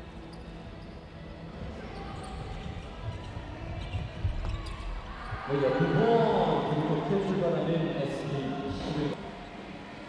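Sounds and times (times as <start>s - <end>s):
gym hall background noise: 0.0s - 10.0s.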